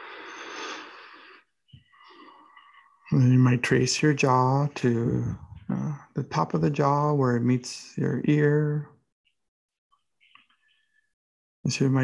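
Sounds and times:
person breathing out: 0:00.0 - 0:01.4.

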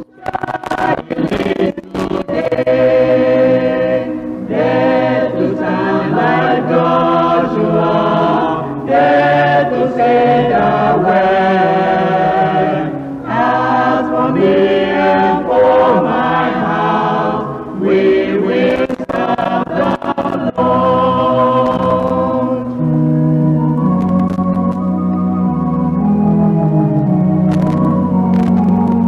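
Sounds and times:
choir singing: 0:00.0 - 0:22.8.

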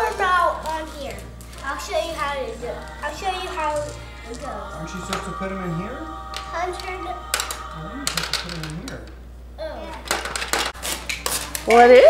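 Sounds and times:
low voices: 0:00.0 - 0:10.0
plastic game pieces clicking: 0:07.4 - 0:09.1.

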